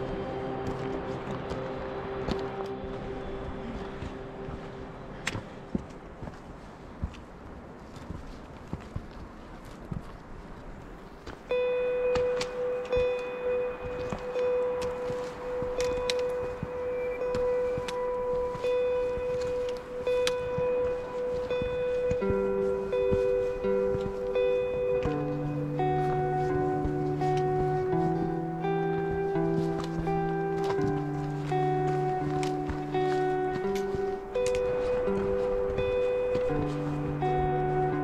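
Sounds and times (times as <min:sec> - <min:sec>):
footsteps on rocky path: 0:00.0 - 0:38.0
outdoor noise: 0:00.0 - 0:38.0
trekking pole clicks: 0:05.1 - 0:06.3, 0:11.1 - 0:37.7.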